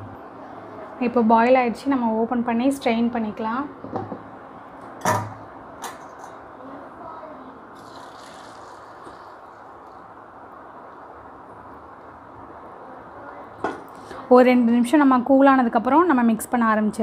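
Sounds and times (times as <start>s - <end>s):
steady low hiss: 0.0s - 17.0s
water poured into metal strainer: 7.8s - 9.9s.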